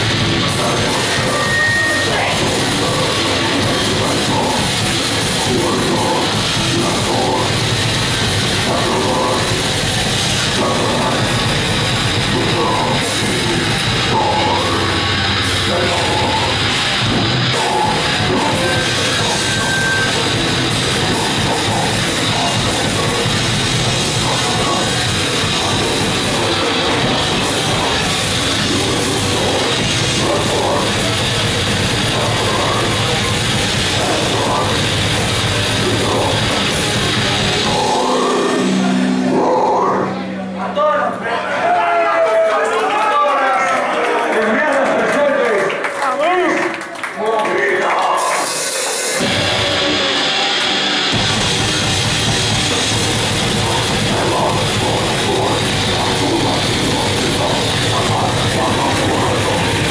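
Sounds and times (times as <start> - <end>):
distorted guitar: 0.0 - 41.2, 48.0 - 59.9
metal band playing loud: 0.0 - 43.1, 46.5 - 59.9.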